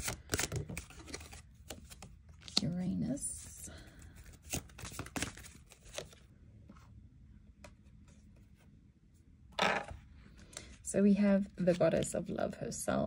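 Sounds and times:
card rustling: 0.0s - 2.7s, 4.0s - 6.3s.

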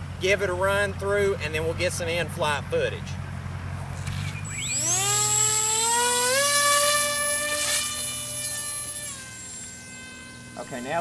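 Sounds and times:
model plane motor whining: 4.0s - 11.0s.

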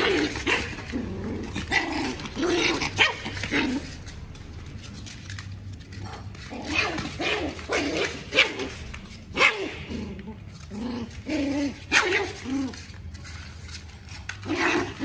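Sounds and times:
puppies barking and yipping: 0.0s - 4.2s.

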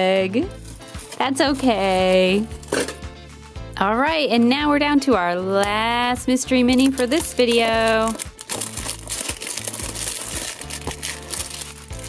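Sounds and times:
plastic wrap crinkling: 0.5s - 2.3s, 6.7s - 12.0s.

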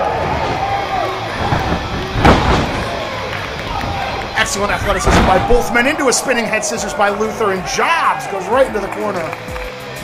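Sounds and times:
spectators shouting: 0.0s - 9.4s
body slamming onto wrestling ring: 0.3s - 4.2s, 4.8s - 5.8s.

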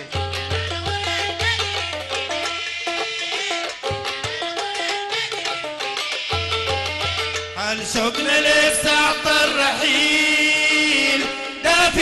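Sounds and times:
live band playing: 0.0s - 12.0s
two men singing: 7.6s - 12.0s.

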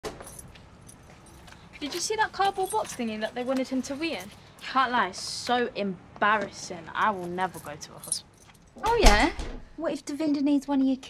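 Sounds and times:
keys jingling: 0.0s - 4.5s, 7.0s - 9.0s.

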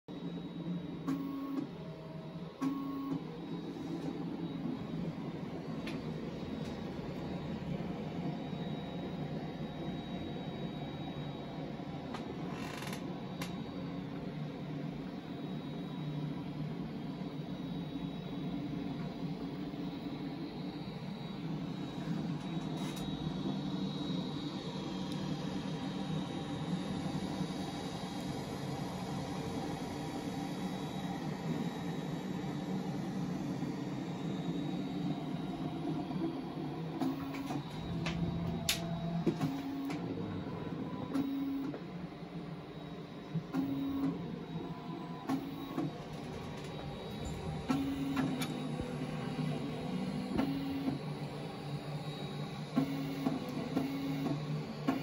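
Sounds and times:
faint high whine: 0.1s - 55.0s
stepper motors whirring: 35.0s - 41.8s.

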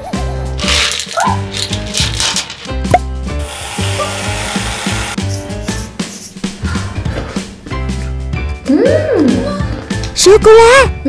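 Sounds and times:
background music with steady beat: 1.2s - 11.0s
whipped cream can spraying: 3.4s - 6.4s.

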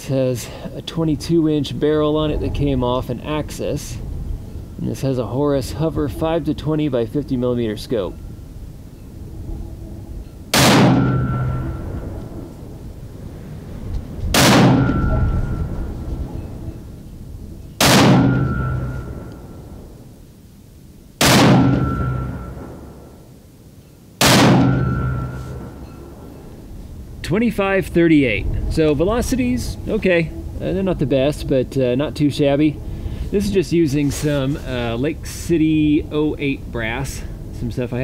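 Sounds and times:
rifle shots: 10.5s - 11.8s, 14.3s - 15.2s, 17.8s - 19.3s, 21.2s - 22.9s, 24.2s - 25.7s.

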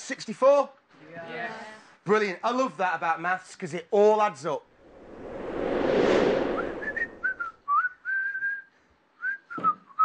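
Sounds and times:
whoosh: 4.7s - 7.6s
person whistling a tune: 6.9s - 10.0s.

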